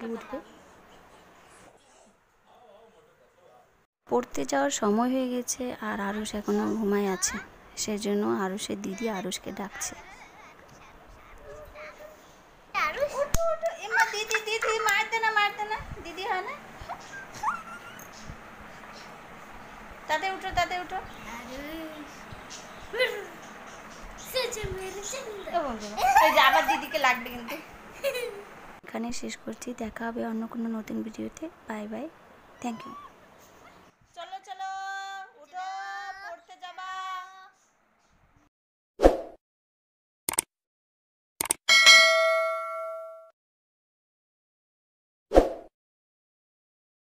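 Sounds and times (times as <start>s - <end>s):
child squealing: 17.4s - 18.1s, 32.6s - 33.2s
bright bell ding: 41.7s - 43.3s.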